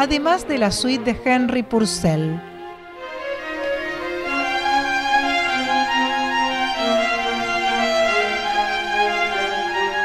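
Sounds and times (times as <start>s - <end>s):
solo violin: 0.0s - 10.0s
string orchestra: 0.0s - 10.0s.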